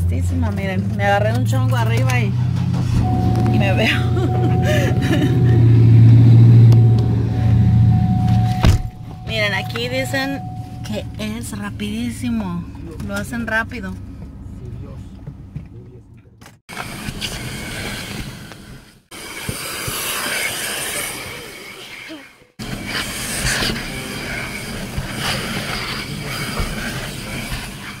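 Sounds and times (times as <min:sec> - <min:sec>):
low rumbling outdoor noise: 0:00.0 - 0:16.6.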